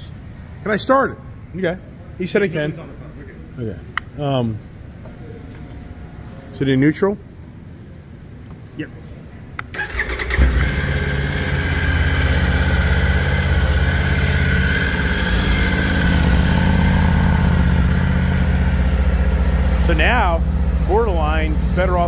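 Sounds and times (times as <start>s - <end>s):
motorcycle engine starting and idling: 9.6s - 22.0s.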